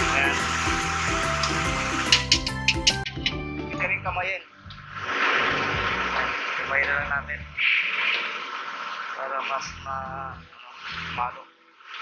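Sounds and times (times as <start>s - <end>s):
water pouring into a basin: 0.0s - 3.0s, 4.8s - 7.0s, 7.6s - 12.0s
background music: 0.0s - 12.0s.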